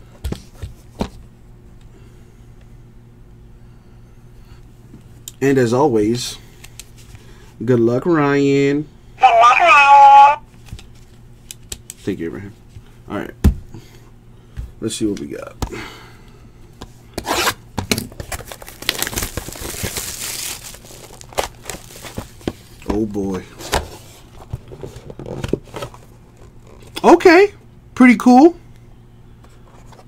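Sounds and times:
high-pitched voice: 9.2s - 10.4s.

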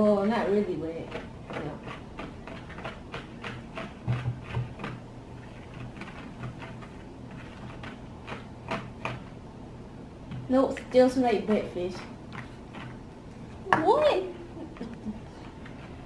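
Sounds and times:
low steady hum: 0.0s - 16.0s
spoons scraping plastic bowls: 0.2s - 9.4s, 11.4s - 13.1s.

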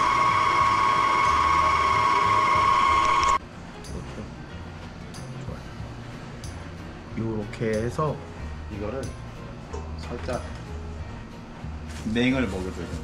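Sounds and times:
stand mixer motor whine: 0.0s - 3.4s.

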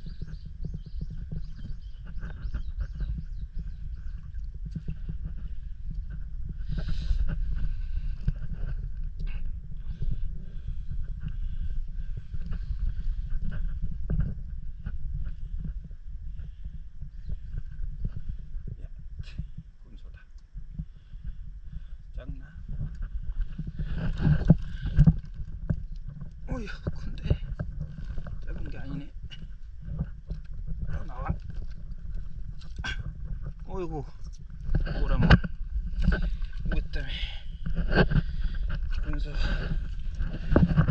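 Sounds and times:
clicks and knocks among rocks: 0.0s - 19.6s, 20.4s - 40.9s
underwater low rumble: 0.0s - 40.9s
wind on microphone: 0.0s - 40.9s.

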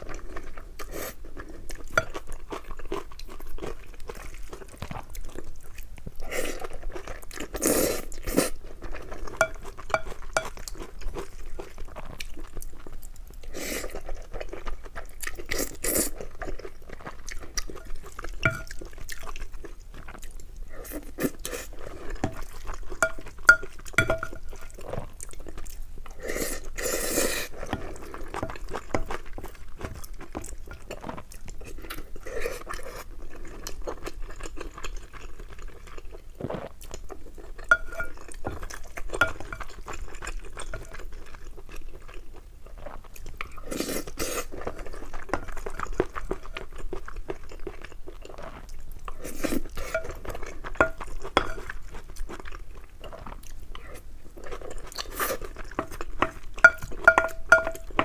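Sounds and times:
close chewing: 0.0s - 58.0s
wooden spoon scraping glass bowl: 37.7s - 38.6s.

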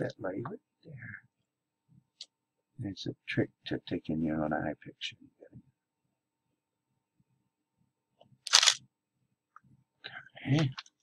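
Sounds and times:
camera shutter clack: 8.5s - 8.8s.

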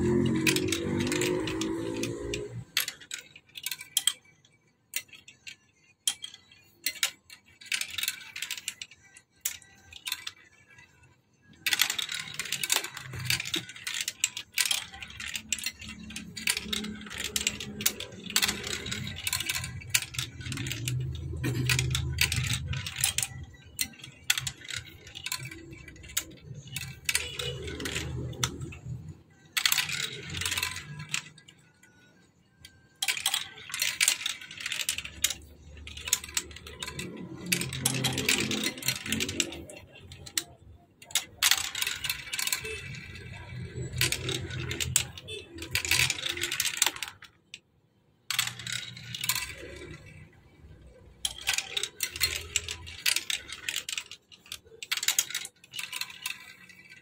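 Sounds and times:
marbles rattling down plastic run: 0.0s - 47.6s, 48.2s - 57.0s.

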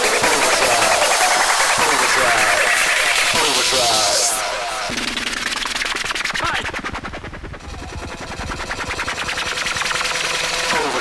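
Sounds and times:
hard dance music: 0.0s - 6.9s, 10.0s - 11.0s.

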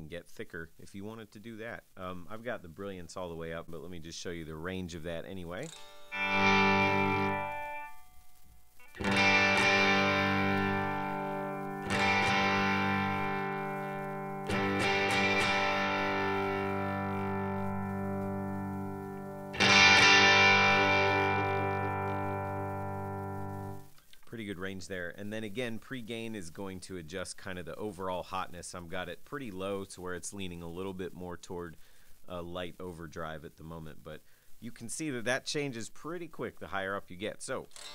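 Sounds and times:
overdriven electric guitar chords: 5.6s - 23.9s.

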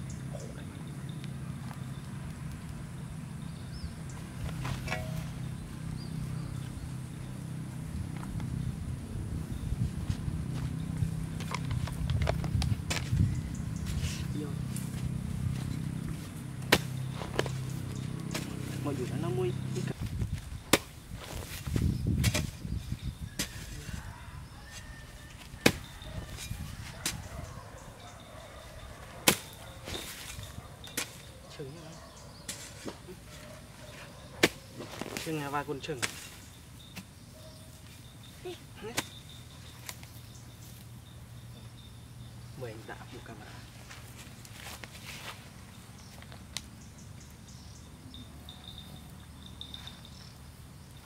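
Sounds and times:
steady low hum: 0.0s - 23.5s
hoe chopping into soil: 11.4s - 13.2s, 16.6s - 18.9s, 20.0s - 22.7s, 23.3s - 24.0s, 25.3s - 27.3s, 29.2s - 31.3s, 32.4s - 33.4s, 34.4s - 37.1s, 38.8s - 40.1s.

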